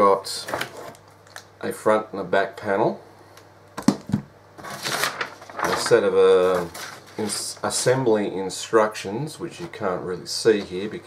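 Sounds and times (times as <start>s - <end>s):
paper sheet rustling: 4.6s - 7.9s.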